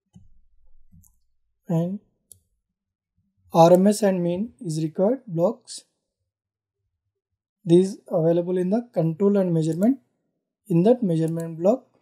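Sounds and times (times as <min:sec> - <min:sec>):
computer mouse clicks: 0:11.2 - 0:11.6.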